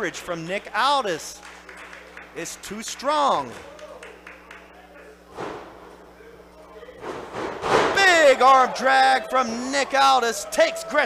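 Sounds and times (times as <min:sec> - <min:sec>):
wrestlers thudding onto canvas: 0:05.3 - 0:05.9, 0:07.0 - 0:08.2.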